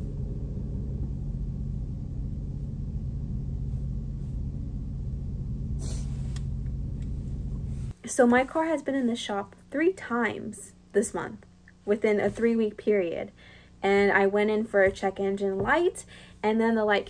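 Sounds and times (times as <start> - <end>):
car engine idling: 0.0 - 7.9.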